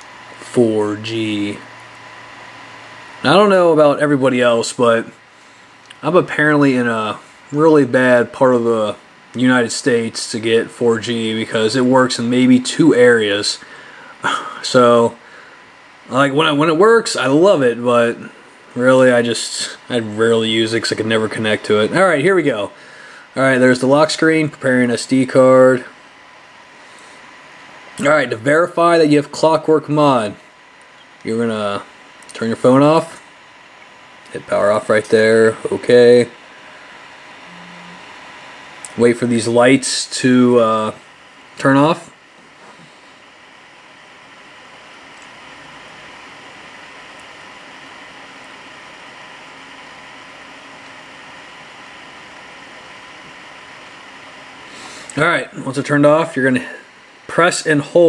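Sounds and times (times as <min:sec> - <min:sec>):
faint high whine: 0:00.0 - 0:58.0
room noise hiss: 0:00.0 - 0:58.0
faint steady tone: 0:36.6 - 0:38.2.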